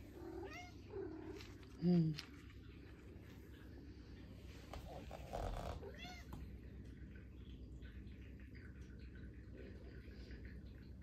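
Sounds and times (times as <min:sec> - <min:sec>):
cat meowing: 0:00.3 - 0:00.8, 0:05.8 - 0:06.4.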